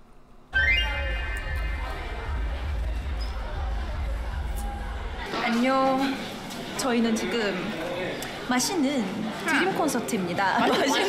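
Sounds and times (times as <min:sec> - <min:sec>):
steady low rumble: 0:00.6 - 0:05.3.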